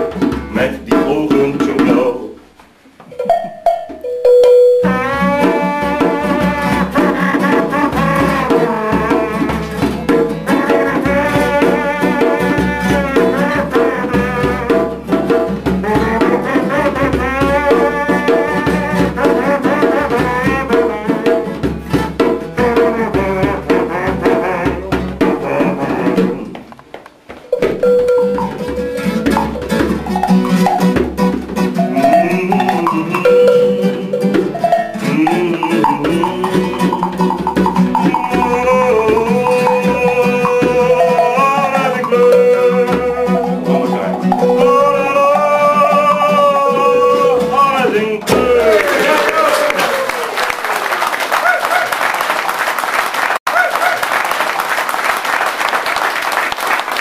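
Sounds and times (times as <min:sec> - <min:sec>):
hand percussion: 0:03.1 - 0:26.6, 0:27.5 - 0:47.6
classical guitar: 0:04.6 - 0:26.9, 0:27.6 - 0:48.3.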